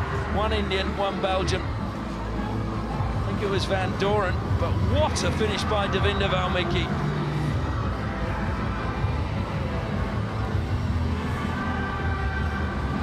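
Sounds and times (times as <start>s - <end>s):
music over public address: 0.0s - 13.0s
open-air stadium ambience: 0.0s - 13.0s.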